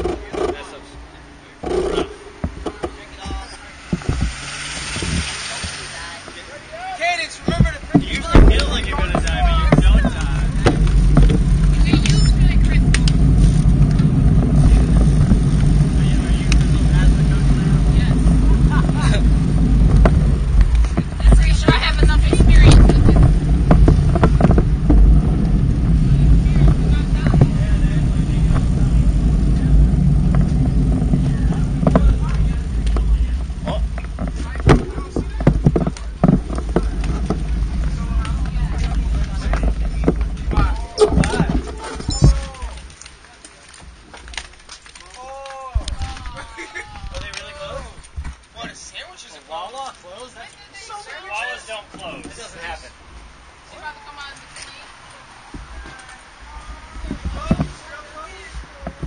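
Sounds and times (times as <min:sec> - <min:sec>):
wind buffeting microphone: 0:00.0 - 0:43.2, 0:55.2 - 0:59.0
road noise: 0:00.0 - 0:59.0
traffic: 0:00.0 - 0:59.0
voices: 0:00.0 - 0:59.0.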